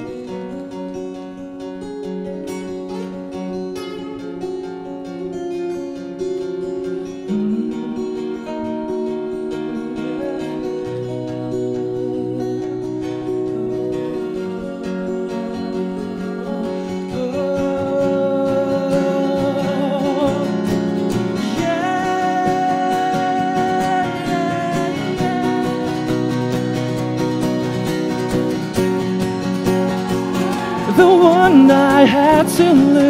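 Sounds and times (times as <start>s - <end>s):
man singing with vibrato: 0.0s - 1.2s, 6.2s - 27.2s, 30.6s - 33.0s
acoustic guitars playing: 0.0s - 33.0s.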